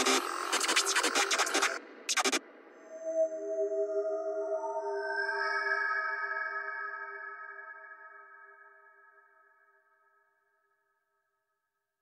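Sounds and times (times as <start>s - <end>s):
electronic dance beat: 0.0s - 2.4s.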